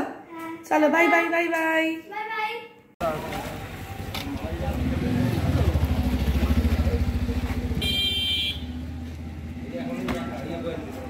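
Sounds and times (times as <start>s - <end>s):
vehicle engine running: 3.0s - 11.0s.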